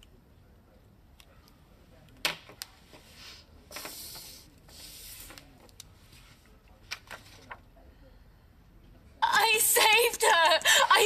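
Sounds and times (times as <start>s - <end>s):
paper sliding across table: 2.9s - 6.4s.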